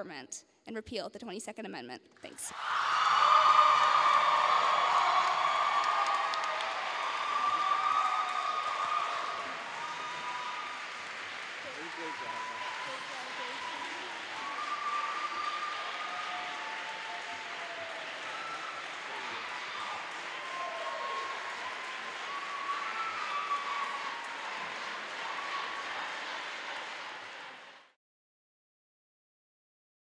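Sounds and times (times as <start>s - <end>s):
audience applauding: 2.5s - 28.0s.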